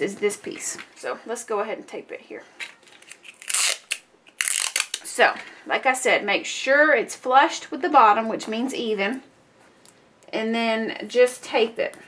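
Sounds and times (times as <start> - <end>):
adhesive tape tearing: 2.6 - 5.1.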